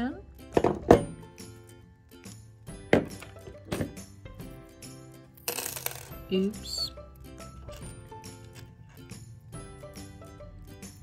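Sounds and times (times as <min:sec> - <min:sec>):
background music: 0:00.0 - 0:11.0
metal parts clinking on wood: 0:05.4 - 0:06.2.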